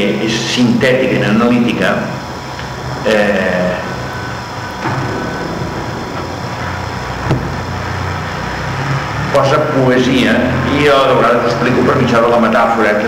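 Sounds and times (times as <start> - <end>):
low rumble and hum: 1.5 - 12.0.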